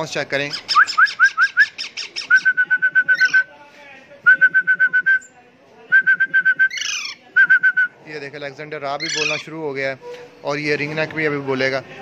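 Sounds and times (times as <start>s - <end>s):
young parakeets begging calls: 0.4s - 2.4s, 3.1s - 3.4s, 6.7s - 7.2s, 8.9s - 9.6s.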